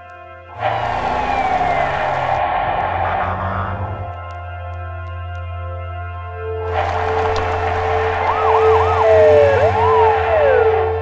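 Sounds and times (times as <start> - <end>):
ambulance siren: 0.0 - 11.0
rushing background noise: 0.6 - 5.1, 6.6 - 11.0.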